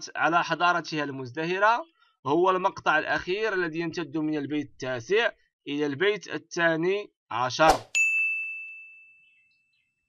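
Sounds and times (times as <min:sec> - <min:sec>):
bright ding: 0:07.9 - 0:09.3.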